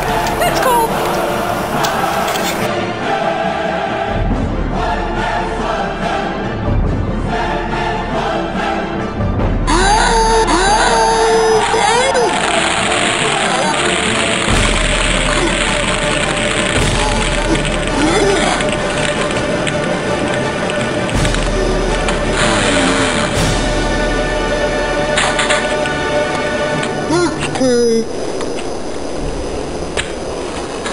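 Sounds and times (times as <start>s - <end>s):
gliding cries: 0.0s - 2.7s
music playing: 0.0s - 27.6s
ice water splashing from bucket: 12.1s - 23.8s.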